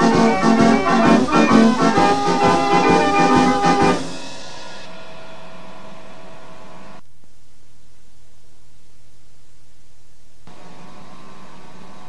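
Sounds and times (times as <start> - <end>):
organ chord: 0.0 - 7.0
cassette tape hiss: 6.3 - 12.0.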